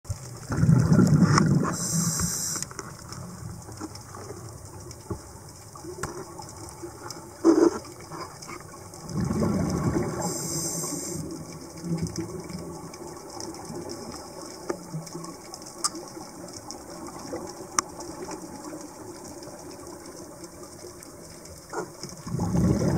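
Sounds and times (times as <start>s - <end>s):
faint clicks: 0.1s - 9.0s, 9.6s - 22.3s
underwater background: 0.1s - 22.9s
bubbling underwater exhalations: 0.5s - 2.5s, 9.0s - 10.4s, 21.8s - 22.9s
regulator hiss: 1.7s - 2.7s, 10.2s - 11.2s.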